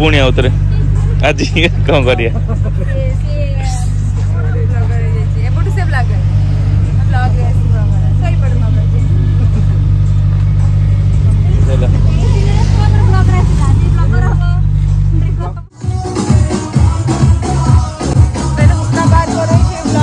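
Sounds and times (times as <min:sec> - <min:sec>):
people talking: 0:00.0 - 0:06.4, 0:07.0 - 0:09.8, 0:11.3 - 0:15.7
car engine idling: 0:00.0 - 0:20.0.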